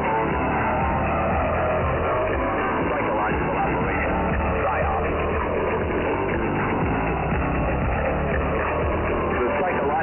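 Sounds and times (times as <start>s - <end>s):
shortwave radio music: 0.0s - 10.0s.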